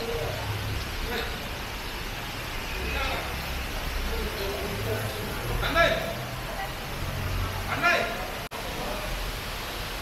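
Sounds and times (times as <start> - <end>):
rain hiss: 0.0 - 10.0
traffic on wet street: 0.0 - 10.0.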